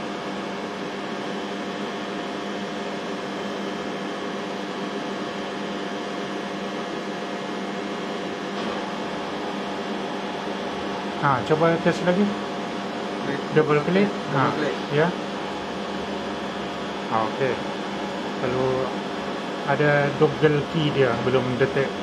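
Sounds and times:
steady machinery hum: 0.0 - 22.0.

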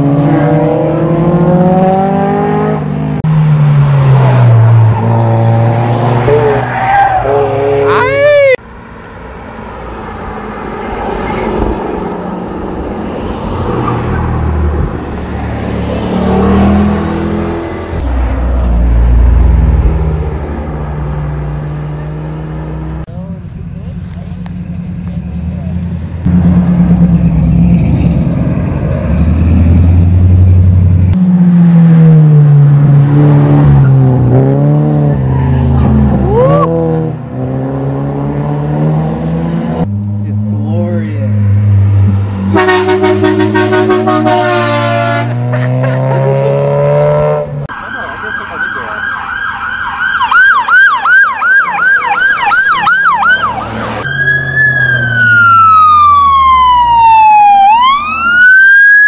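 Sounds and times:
sports car engines revving: 0.0 - 49.2.

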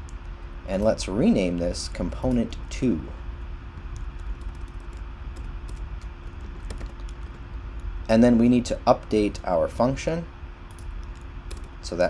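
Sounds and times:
steady low hum: 0.0 - 12.0
keyboard typing: 3.8 - 7.9, 10.7 - 11.8.

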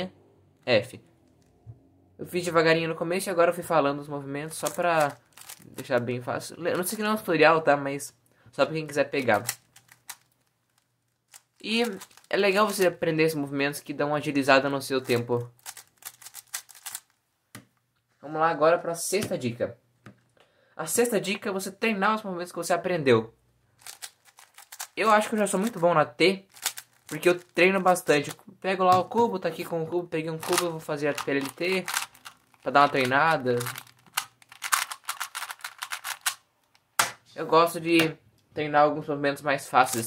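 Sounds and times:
puzzle cube layer turns clacking: 4.5 - 6.0, 9.2 - 13.0, 15.0 - 17.2, 23.8 - 29.7, 30.3 - 37.2
speed cube clicking: 15.6 - 17.0, 23.8 - 25.0, 26.6 - 27.5, 30.4 - 36.4.

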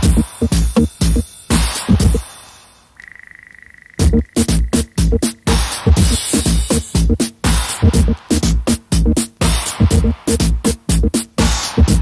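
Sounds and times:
kick drum and bass hit: 0.0 - 2.2, 4.0 - 12.0
house music beat: 0.0 - 2.3, 4.0 - 12.0
pulsing high electronic tone: 3.0 - 5.6.

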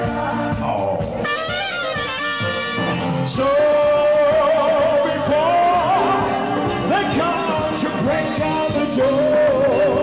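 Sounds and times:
band with trumpet playing: 0.0 - 10.0.

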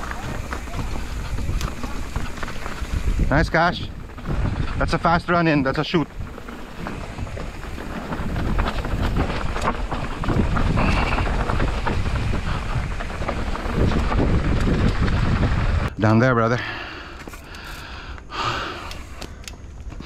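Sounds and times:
wind buffeting microphone: 0.0 - 16.0
tyres crunching over loose stones: 0.0 - 16.3
bike chain and frame rattling: 0.0 - 20.0.

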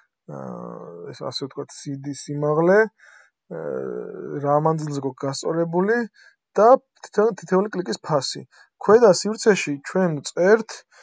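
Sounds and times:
man speaking: 0.3 - 11.0.

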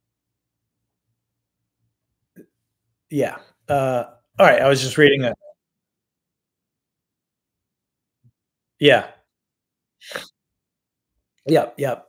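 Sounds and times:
faint mouth sound: 10.0 - 10.4.

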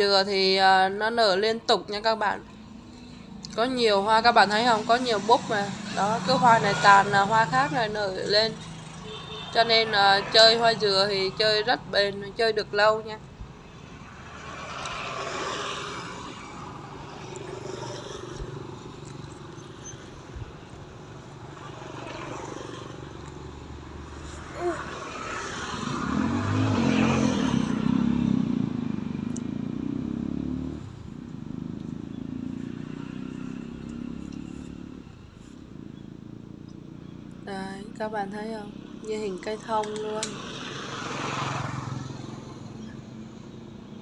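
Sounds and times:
outdoor background noise: 0.0 - 44.0.

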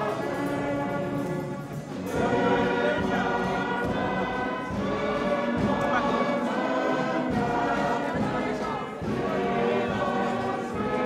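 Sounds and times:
choir singing a hymn: 0.0 - 11.0
musical accompaniment: 0.0 - 11.0.

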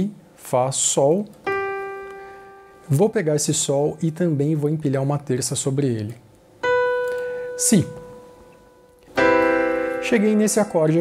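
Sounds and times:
piano note and chord: 1.5 - 4.1, 6.6 - 11.0.

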